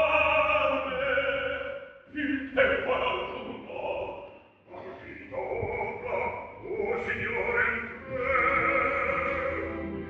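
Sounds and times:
baritone singing: 0:00.0 - 0:10.0
orchestra accompanying: 0:07.0 - 0:10.0.

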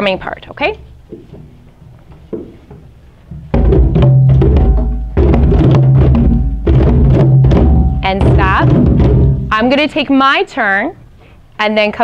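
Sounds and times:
hand drums playing in rhythm: 0:03.3 - 0:09.6.

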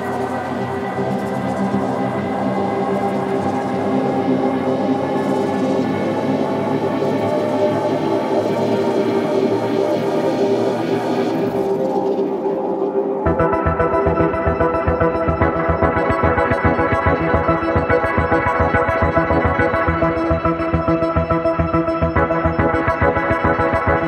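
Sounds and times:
ambient synthesizer drone: 0:00.0 - 0:24.0.

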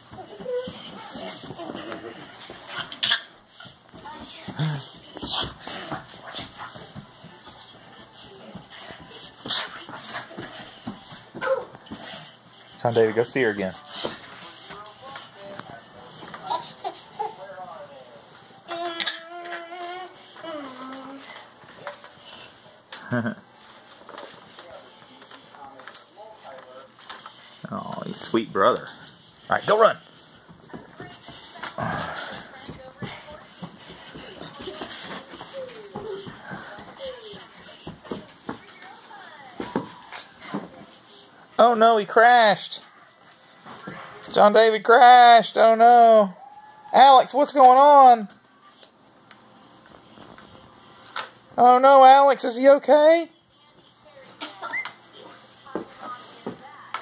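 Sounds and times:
footsteps on carpet: 0:00.0 - 0:16.8, 0:23.5 - 0:41.4.

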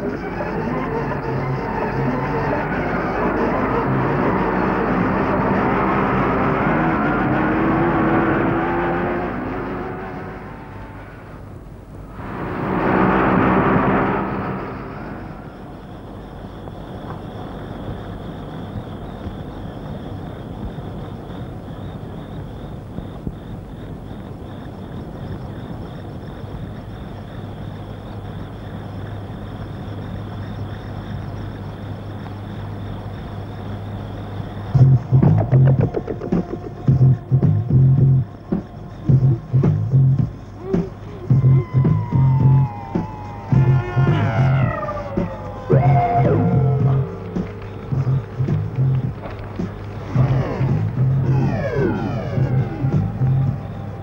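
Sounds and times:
motorcycle engine passing: 0:02.0 - 0:16.4
thin high tone: 0:12.1 - 0:16.2.

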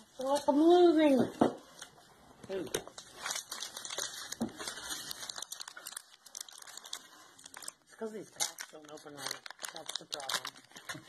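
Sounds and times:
foil wrapper crinkling: 0:02.4 - 0:11.0.

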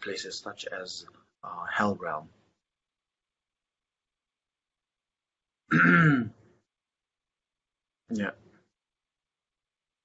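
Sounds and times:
man clearing his throat: 0:05.7 - 0:06.4.

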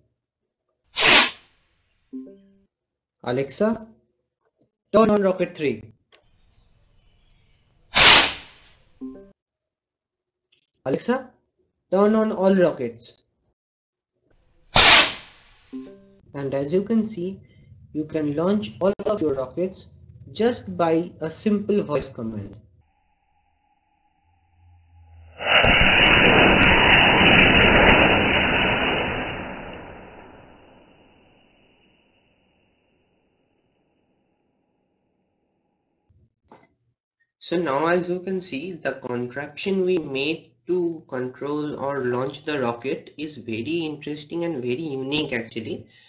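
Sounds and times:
firework rocket whoosh: 0:01.0 - 0:01.5, 0:07.9 - 0:08.7, 0:14.5 - 0:15.8, 0:25.0 - 0:32.0
short low tone: 0:22.6 - 0:25.4.

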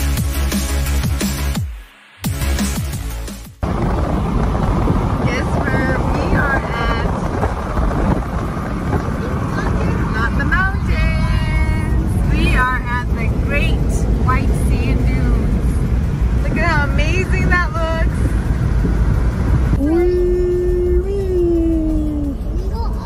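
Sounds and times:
car road and wind noise: 0:02.2 - 0:23.0.

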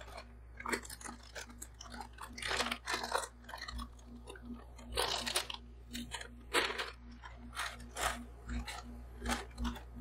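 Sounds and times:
chips crunching: 0:00.0 - 0:10.0
foil snack bag crinkling: 0:00.0 - 0:10.0
steady low hum: 0:00.0 - 0:10.0.

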